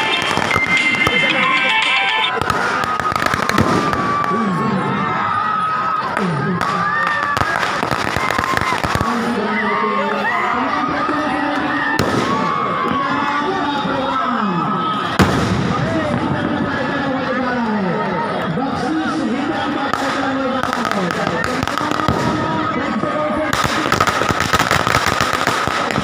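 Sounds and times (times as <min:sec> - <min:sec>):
steady high tone: 0:00.0 - 0:02.4
firecrackers cracking: 0:00.0 - 0:04.4, 0:06.2 - 0:09.4, 0:11.9 - 0:12.6, 0:15.1 - 0:16.9, 0:19.8 - 0:26.0
crowd shouting: 0:00.0 - 0:26.0.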